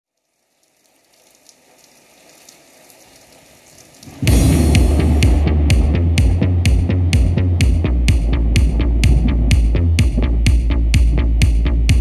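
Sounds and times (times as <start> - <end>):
vinyl record crackle and hiss: 0.1 - 5.4.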